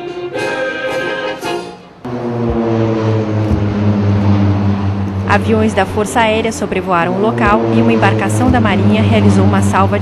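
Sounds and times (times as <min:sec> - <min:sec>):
brass band music: 0:00.0 - 0:10.0
aircraft flying overhead: 0:02.0 - 0:10.0.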